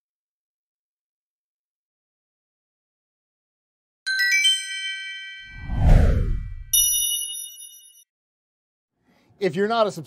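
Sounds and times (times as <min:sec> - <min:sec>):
bright bell-like notes: 0:04.1 - 0:05.7, 0:06.4 - 0:08.0
ringing chime chord: 0:04.1 - 0:05.7, 0:06.7 - 0:08.0
whoosh: 0:05.4 - 0:06.8.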